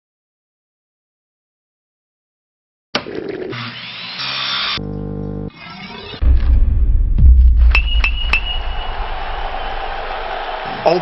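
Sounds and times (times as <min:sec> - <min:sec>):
circular blade whining and grinding: 0:05.5 - 0:06.5
music: 0:06.2 - 0:10.7.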